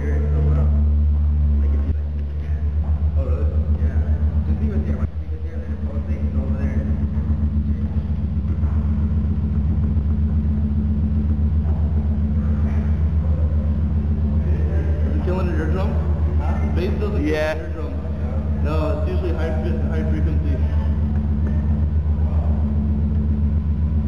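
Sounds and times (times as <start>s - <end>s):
low pulsing bass drone: 0.0s - 24.0s.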